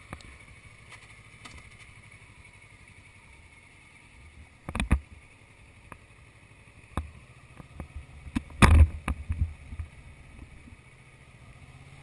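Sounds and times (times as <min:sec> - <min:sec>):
motorcycle engine low rumble: 0:00.0 - 0:12.0.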